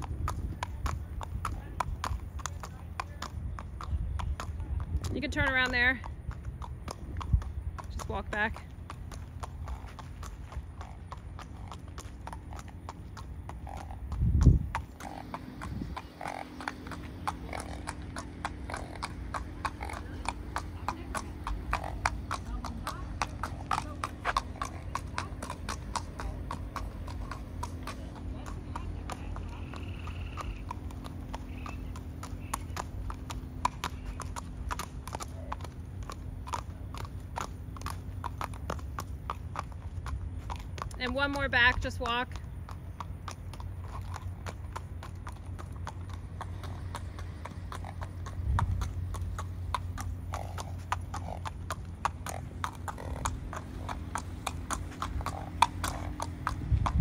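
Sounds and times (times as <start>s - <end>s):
horse hooves on asphalt: 0.0s - 57.0s.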